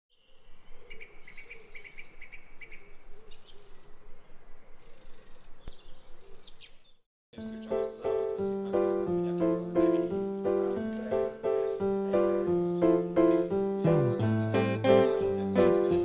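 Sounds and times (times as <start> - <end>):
birds chirping and whistling: 0.6 - 7.0
piano music: 7.4 - 16.0.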